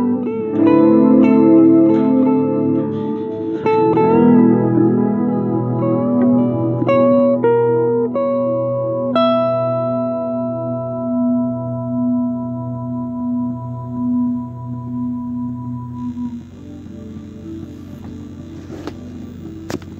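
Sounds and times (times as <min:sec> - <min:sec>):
electric guitar picked notes: 0:00.0 - 0:19.9
low held note: 0:09.5 - 0:19.9.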